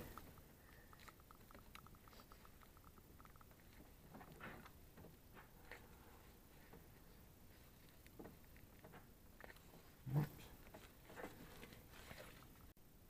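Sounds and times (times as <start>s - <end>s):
small ticks: 0.0s - 12.8s.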